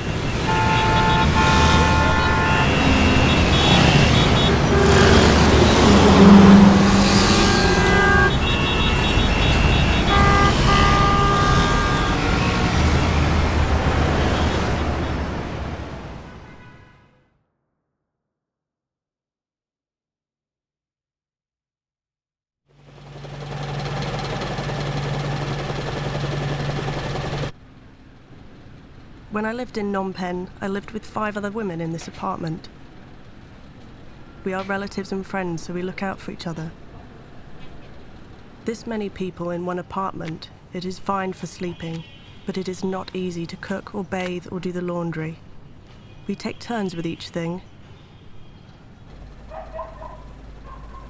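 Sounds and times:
loud mechanical din: 2.6 - 10.8.

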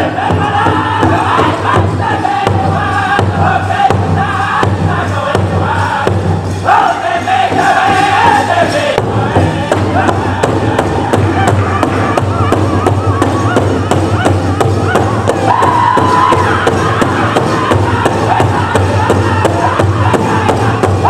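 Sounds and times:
big drum steady beat: 0.0 - 21.0
group singing in unison: 0.0 - 21.0.

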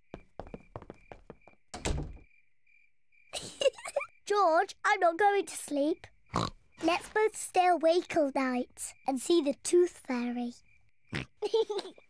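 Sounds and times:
light cartoon footsteps: 0.0 - 2.3
door closing thud: 1.7 - 2.3.

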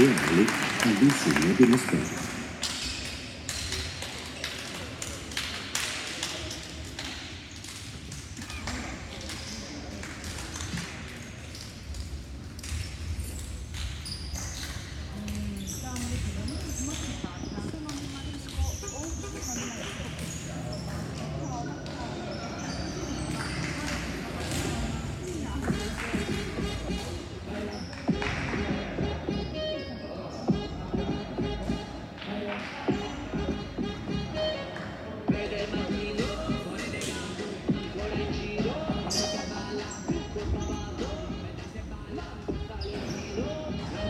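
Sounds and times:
indistinct voices echoing: 0.0 - 44.0.

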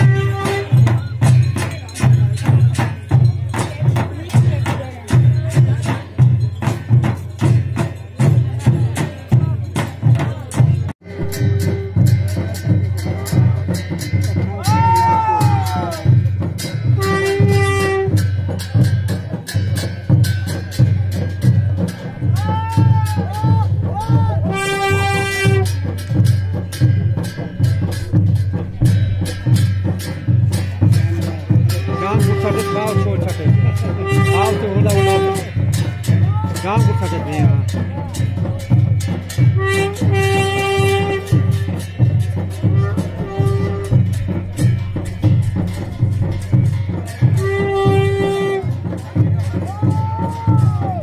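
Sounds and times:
drum beats: 0.0 - 51.0
wind instrument long note: 11.0 - 12.3, 17.0 - 18.2, 22.4 - 25.8, 39.6 - 41.9, 42.6 - 49.0
long held horn-like note: 42.8 - 44.2, 47.4 - 48.7.

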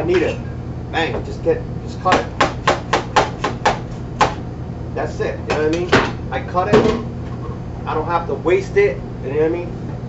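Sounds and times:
knife chopping on cutting board: 2.1 - 4.4.

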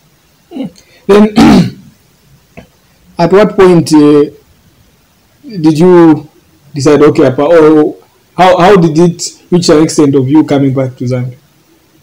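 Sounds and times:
man clearing his throat: 0.5 - 1.9.

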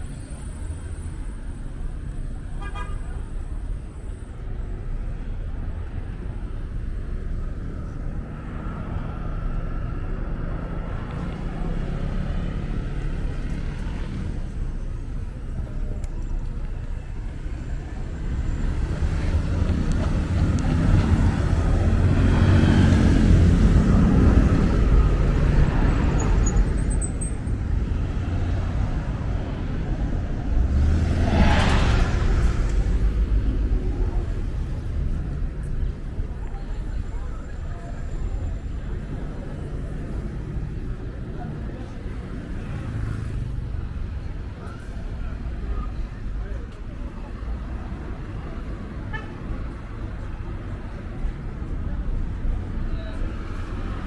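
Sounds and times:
cars passing: 0.0 - 54.0.

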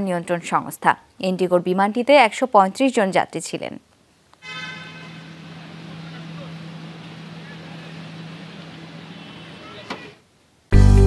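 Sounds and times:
cars idling: 5.0 - 10.2
people's voices: 5.2 - 10.2.

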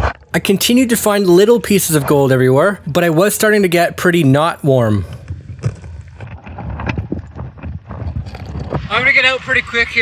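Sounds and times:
clicks and knocks of gravel: 5.1 - 8.9.

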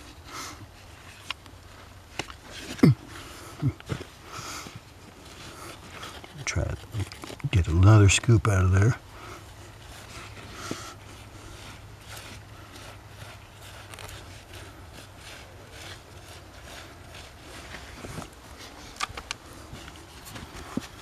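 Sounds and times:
hand scraping soil: 0.0 - 21.0.

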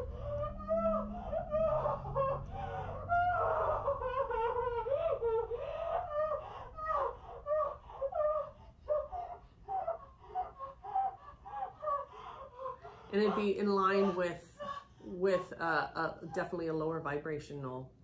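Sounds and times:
woman crying: 0.0 - 16.9.

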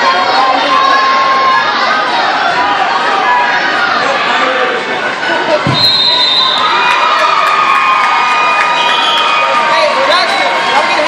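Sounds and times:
spectators shouting and cheering: 0.0 - 11.0.

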